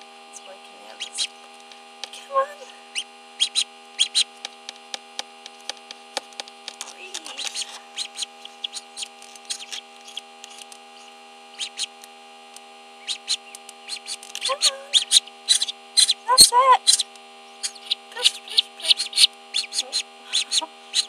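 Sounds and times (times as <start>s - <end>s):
electrical hum: 0.0s - 21.0s
duckling peeping: 0.4s - 4.6s, 6.7s - 12.1s, 13.0s - 21.0s.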